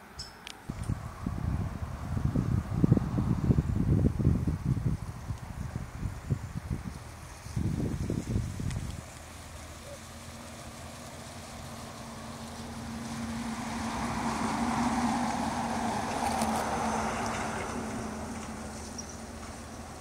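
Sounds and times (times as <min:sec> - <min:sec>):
light wind: 0:00.0 - 0:20.0
vehicle driving past: 0:09.2 - 0:20.0.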